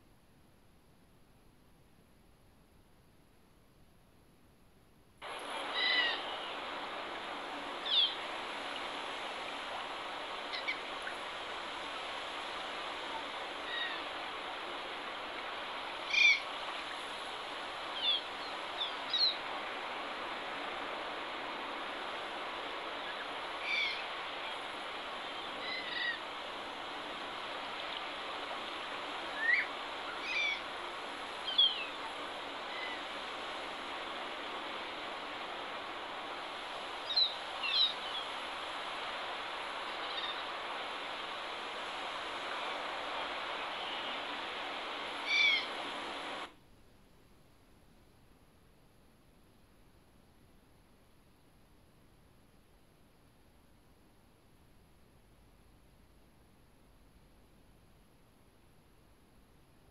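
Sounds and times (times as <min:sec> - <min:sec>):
bird chirps and calls: 0:45.3 - 0:45.7.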